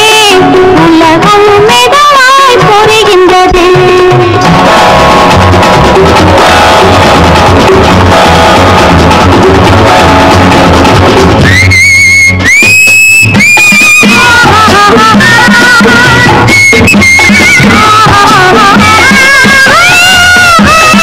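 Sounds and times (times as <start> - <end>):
film song music with drums: 0.0 - 21.0
high held melody line: 0.0 - 21.0.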